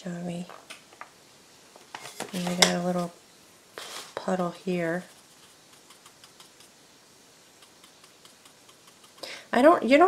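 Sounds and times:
paintbrush ticking on wood: 0:05.0 - 0:06.8, 0:07.5 - 0:09.3.

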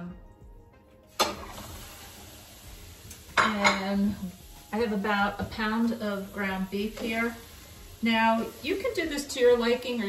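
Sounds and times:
meat sizzling in a skillet: 0:01.1 - 0:10.0.

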